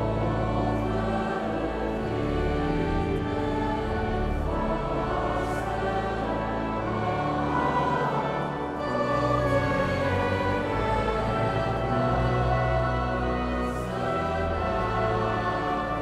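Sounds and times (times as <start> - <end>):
choir and congregation singing hymn: 0.0 - 16.0.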